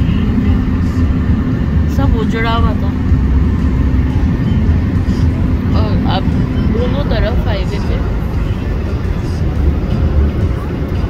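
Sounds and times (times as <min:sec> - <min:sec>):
road and wind noise inside car: 0:00.0 - 0:11.0.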